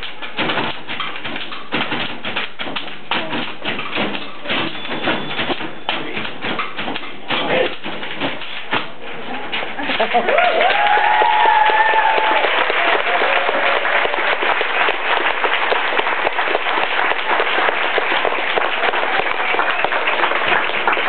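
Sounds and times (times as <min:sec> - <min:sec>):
audience applauding: 0:10.0 - 0:21.0
cheering whoop: 0:10.3 - 0:14.3.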